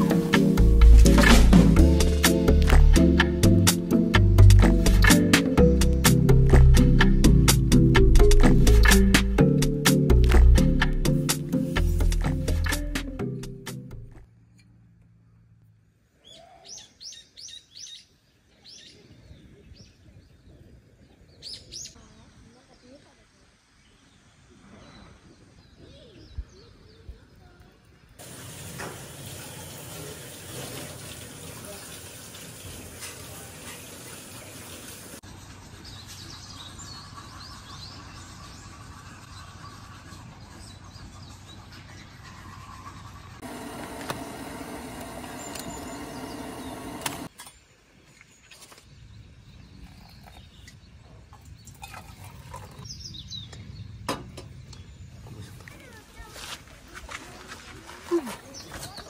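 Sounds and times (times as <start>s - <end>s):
birds chirping: 34.5s - 51.9s.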